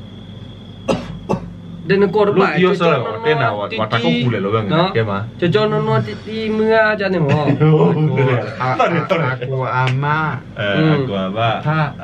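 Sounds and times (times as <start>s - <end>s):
short coughs: 0.9s - 1.6s
man speaking: 1.9s - 12.0s.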